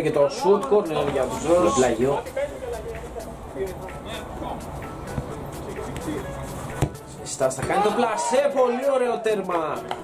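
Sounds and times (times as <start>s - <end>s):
background music: 0.0s - 10.0s
football kicked thump: 6.8s - 7.0s.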